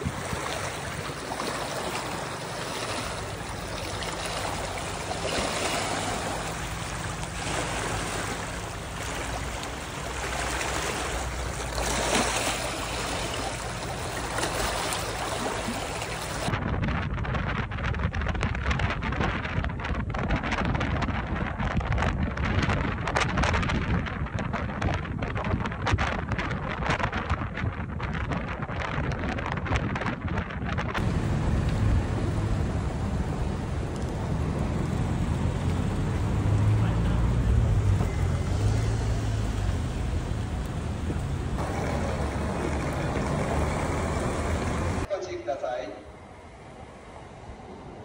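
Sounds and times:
low rumble of traffic: 0:00.0 - 0:16.6, 0:31.0 - 0:48.0
wind buffeting microphone: 0:00.0 - 0:45.1.

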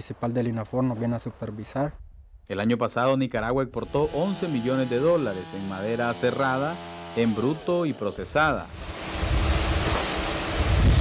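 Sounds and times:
band saw cutting log: 0:03.8 - 0:11.0.

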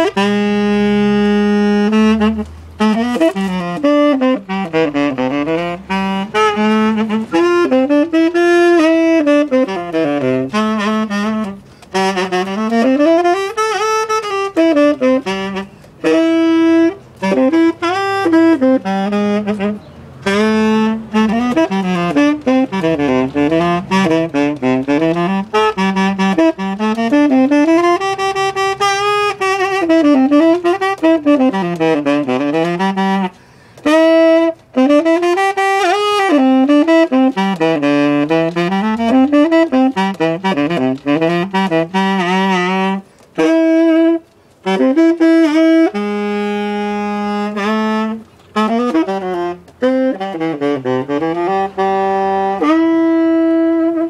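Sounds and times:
solo tenor saxophone melody: 0:00.0 - 0:54.0.

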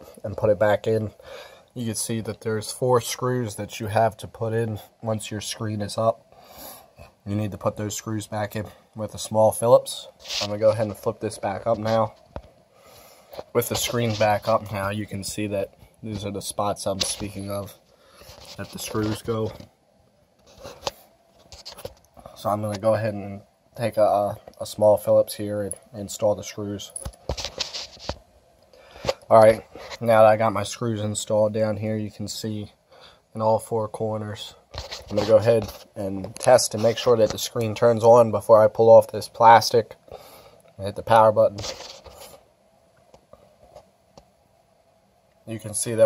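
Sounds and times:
handling rustles and scrapes: 0:09.2 - 0:19.8, 0:20.4 - 0:23.0, 0:25.5 - 0:28.3, 0:29.0 - 0:30.4, 0:34.3 - 0:37.8, 0:41.1 - 0:42.5.

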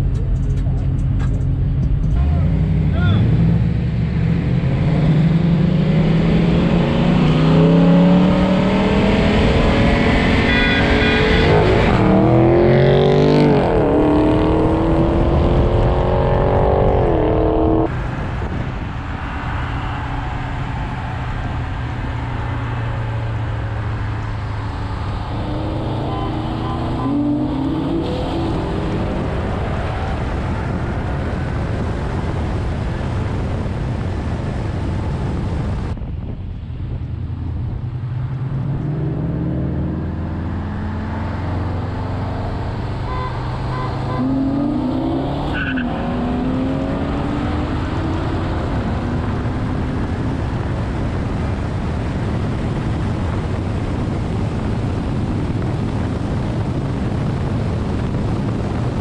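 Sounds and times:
car engine accelerating: 0:00.0 - 0:59.0
wind and road noise: 0:00.0 - 0:59.0.

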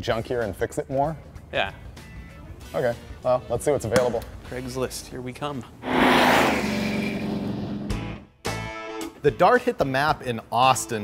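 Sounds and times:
car engine sound effect: 0:05.8 - 0:08.0
sharp hit: 0:05.8 - 0:08.0.

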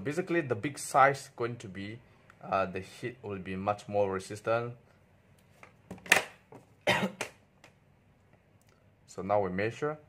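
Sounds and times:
man coughing: 0:06.8 - 0:07.3.

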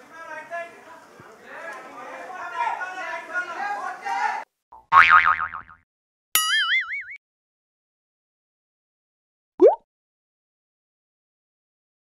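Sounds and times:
springy cartoon boing: 0:04.8 - 0:05.8, 0:06.4 - 0:07.2.

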